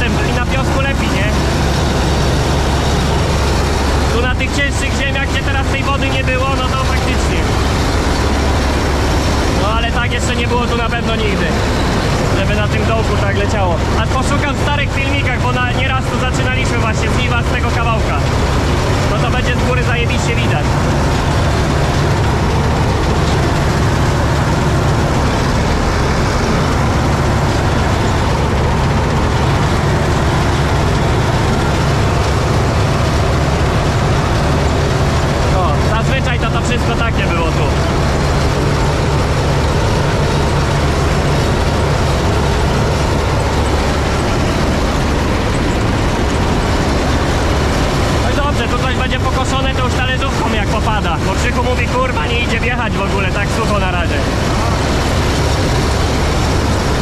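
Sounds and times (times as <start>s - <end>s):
combine harvester running: 0.0s - 57.0s.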